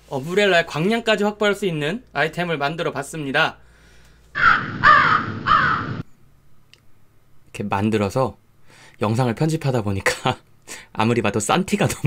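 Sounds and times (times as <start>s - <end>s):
crow cawing: 4.4s - 6.0s.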